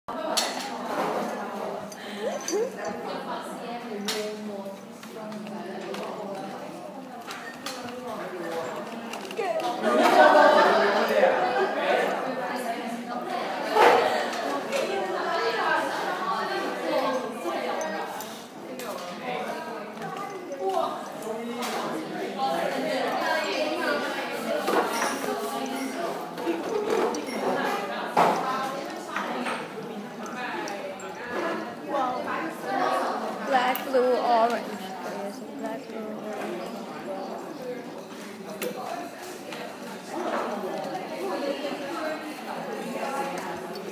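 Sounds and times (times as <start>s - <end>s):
murmur of voices: 0.1s - 43.9s.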